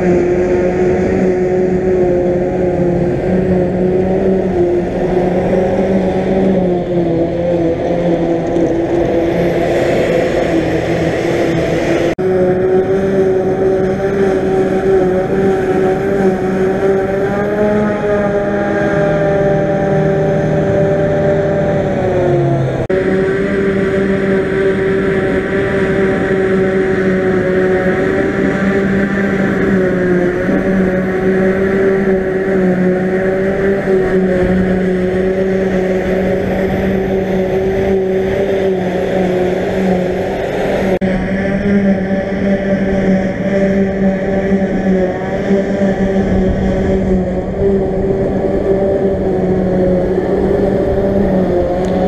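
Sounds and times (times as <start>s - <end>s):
chopper humming whine: 0.0s - 52.0s
harvester engine drone: 0.0s - 52.0s
tractor running: 0.0s - 52.0s.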